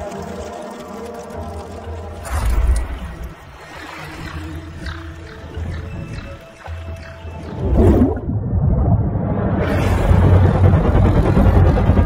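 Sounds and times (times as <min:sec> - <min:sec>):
low rumble: 0:07.6 - 0:12.0.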